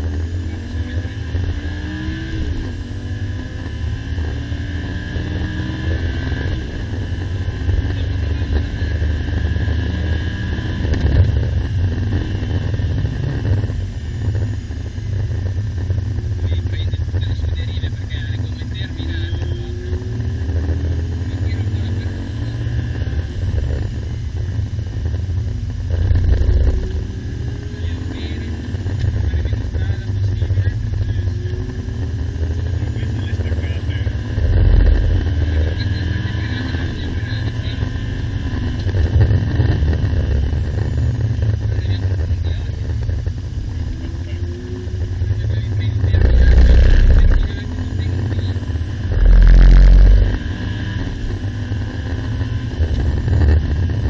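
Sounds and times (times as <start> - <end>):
sports car engine accelerating: 0.0 - 54.0.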